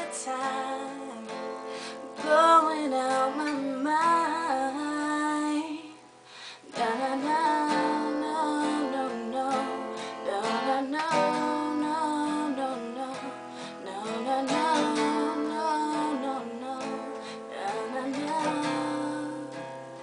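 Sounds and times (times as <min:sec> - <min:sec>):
strummed acoustic guitar: 0:00.0 - 0:20.0
woman singing: 0:00.0 - 0:20.0.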